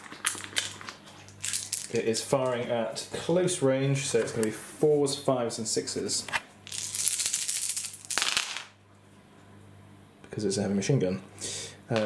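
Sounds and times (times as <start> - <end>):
plastic dice rattling on table: 6.7 - 8.7.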